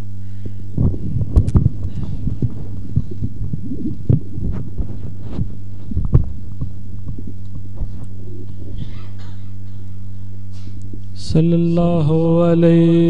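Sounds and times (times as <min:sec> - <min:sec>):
electrical hum: 0:00.0 - 0:13.0
microphone handling bumps: 0:00.4 - 0:09.9.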